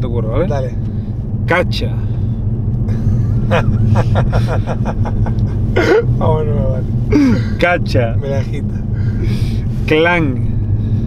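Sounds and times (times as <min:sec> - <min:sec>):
van engine and road noise: 0:00.0 - 0:11.0
man laughing: 0:02.9 - 0:06.2, 0:07.1 - 0:07.6.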